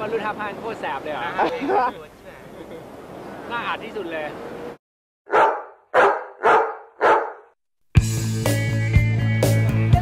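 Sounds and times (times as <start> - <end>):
dog barking: 5.3 - 7.6
music with a steady beat: 8.0 - 10.0.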